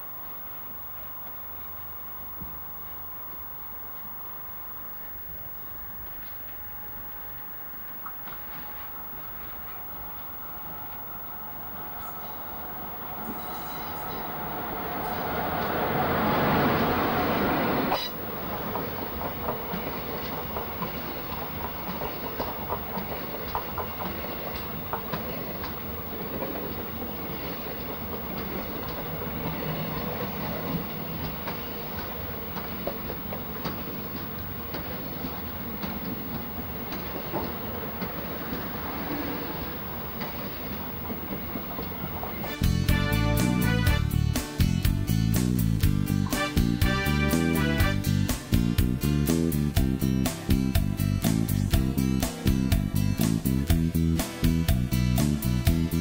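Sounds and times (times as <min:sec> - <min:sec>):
rail rumble: 0:05.0 - 0:56.0
diesel locomotive passing: 0:08.3 - 0:50.4
wheels clicking over rail joints: 0:10.9 - 0:43.0.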